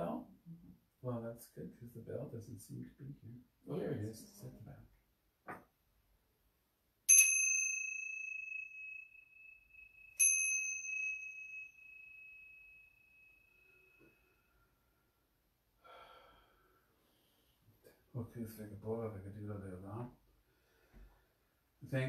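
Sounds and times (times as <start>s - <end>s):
small hand bell ringing: 7.1s - 14.5s.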